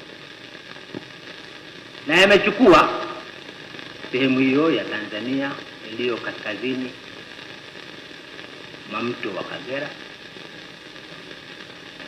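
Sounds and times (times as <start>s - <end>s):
old recording hiss and crackle: 0.0s - 12.0s.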